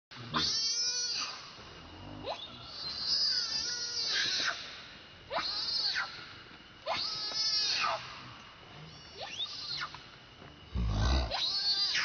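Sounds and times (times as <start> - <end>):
baby monkey screaming: 0.3 - 1.5, 2.2 - 4.7, 5.3 - 6.2, 6.8 - 8.2, 8.9 - 9.9, 11.0 - 12.0.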